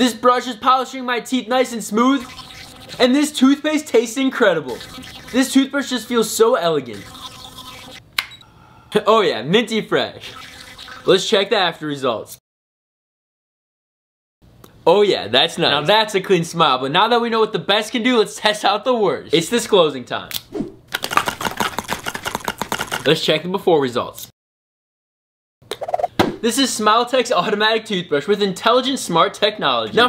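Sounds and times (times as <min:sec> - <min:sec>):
electric toothbrush buzzing: 0:04.7 - 0:05.4, 0:06.9 - 0:08.0
wet brushing sounds: 0:04.7 - 0:05.6
sharp click: 0:08.2 - 0:08.4
wet clicking of chewing and swishing: 0:20.9 - 0:23.1.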